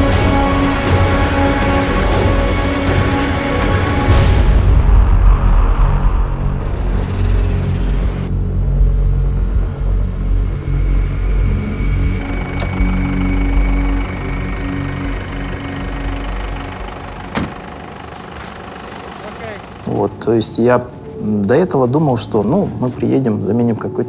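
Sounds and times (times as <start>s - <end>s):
film score music: 0.0s - 24.0s
snowmobile engines rumbling: 6.6s - 23.8s.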